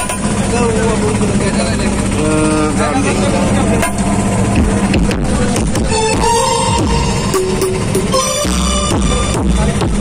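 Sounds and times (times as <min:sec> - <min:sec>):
crowd chattering: 0:00.0 - 0:10.0
steady engine drone: 0:00.0 - 0:10.0.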